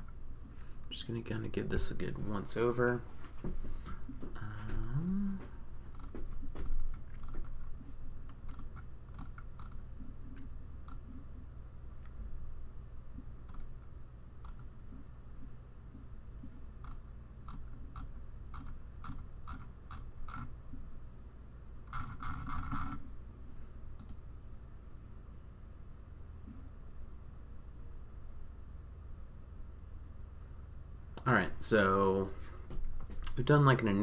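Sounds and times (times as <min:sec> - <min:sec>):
steady low hum: 0:00.0 - 0:34.0
keyboard clicks: 0:05.9 - 0:07.7, 0:08.3 - 0:11.2, 0:13.4 - 0:13.8, 0:14.4 - 0:14.7, 0:24.0 - 0:24.2
computer mouse clicks: 0:05.9 - 0:11.2, 0:13.4 - 0:14.7, 0:16.4 - 0:20.5, 0:24.0 - 0:24.2.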